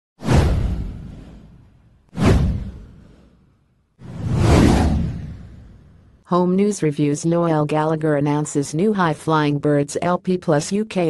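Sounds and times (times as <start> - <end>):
whoosh sound effects: 0.2 - 6.2.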